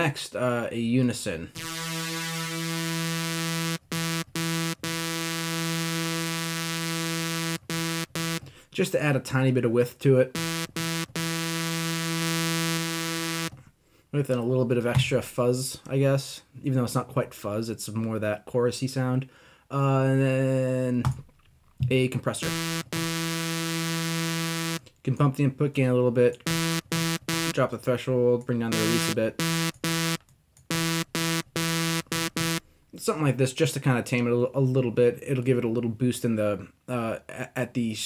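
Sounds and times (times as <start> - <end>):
sawtooth synth note: 1.6 - 8.4, 10.4 - 13.5, 22.4 - 24.8, 26.5 - 27.6, 28.7 - 32.6.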